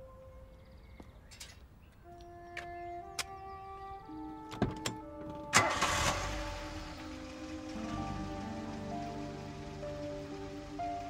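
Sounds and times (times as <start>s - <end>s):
film soundtrack music: 0.0s - 11.0s
car engine starting: 4.4s - 11.0s
car door shutting: 4.5s - 6.2s.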